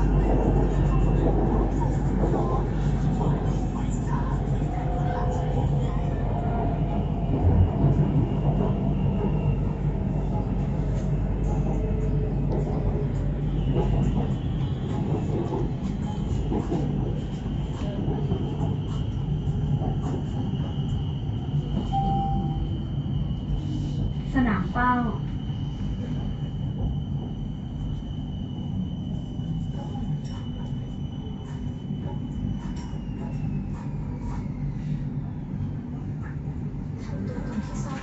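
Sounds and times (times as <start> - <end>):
train rumbling on track: 0.0 - 38.0
thin high whine: 21.8 - 23.0.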